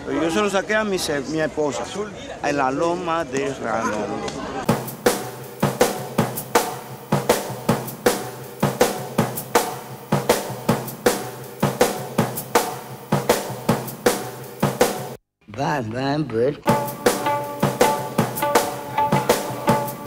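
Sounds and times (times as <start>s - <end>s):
drum kit playing fast rhythm: 4.7s - 15.2s, 16.7s - 20.0s.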